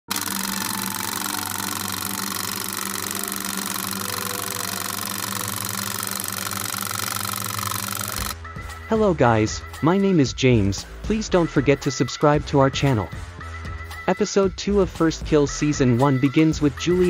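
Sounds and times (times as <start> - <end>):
film projector clattering: 0.0 - 8.4.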